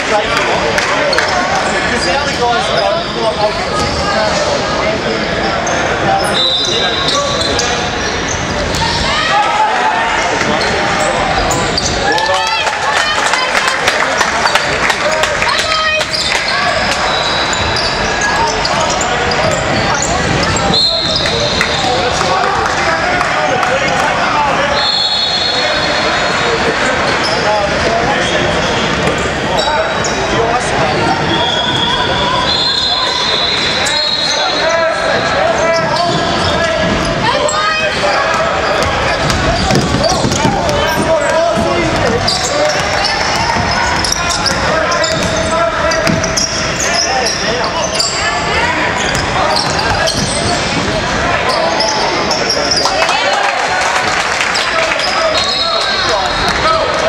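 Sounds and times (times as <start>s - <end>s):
shoe squeals on court: 1.1s - 4.0s, 5.4s - 9.2s, 10.4s - 12.4s, 15.5s - 22.0s, 24.7s - 30.4s, 31.2s - 53.0s, 54.5s - 56.5s
people shouting: 8.8s - 13.2s
basketball bouncing: 38.4s - 46.5s.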